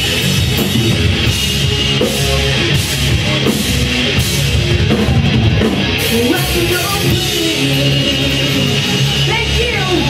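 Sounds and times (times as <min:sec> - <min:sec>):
bass guitar: 0:00.0 - 0:10.0
distorted electric guitar: 0:00.0 - 0:10.0
drum kit: 0:00.0 - 0:10.0.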